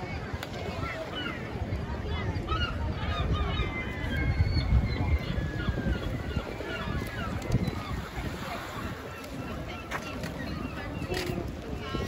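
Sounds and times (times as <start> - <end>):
gulls calling: 0.0 - 12.0
wind buffeting microphone: 0.0 - 12.0.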